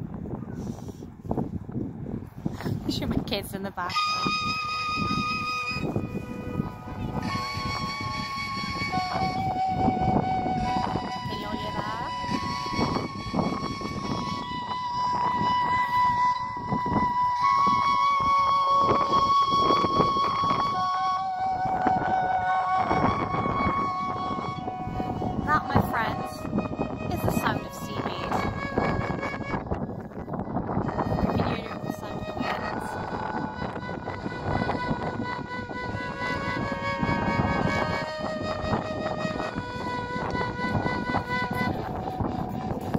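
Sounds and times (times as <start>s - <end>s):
wind buffeting microphone: 0.0s - 42.9s
slow wavering synthesized notes: 4.0s - 42.9s.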